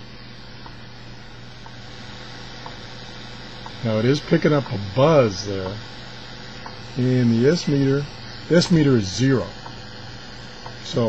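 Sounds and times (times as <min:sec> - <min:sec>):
radio static hiss: 0:00.0 - 0:11.0
faint radio ticks: 0:02.6 - 0:02.8, 0:03.6 - 0:03.8, 0:04.6 - 0:04.8, 0:09.5 - 0:09.8, 0:10.6 - 0:10.8.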